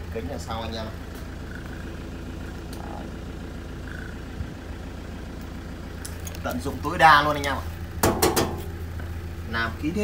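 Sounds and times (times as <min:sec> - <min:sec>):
diesel engine idling: 0:00.0 - 0:10.0.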